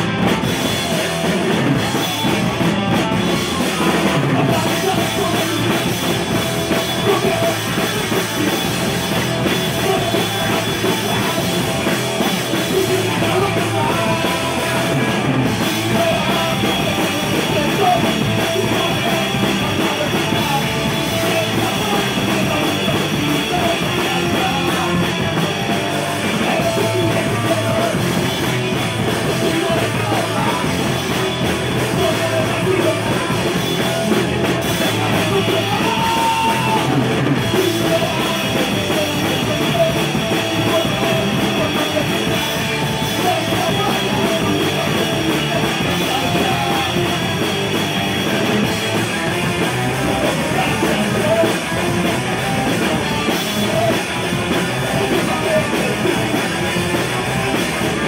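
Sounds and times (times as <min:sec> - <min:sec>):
punk rock band playing live: 0:00.0 - 0:58.0
singer shouting into microphone: 0:34.7 - 0:47.4.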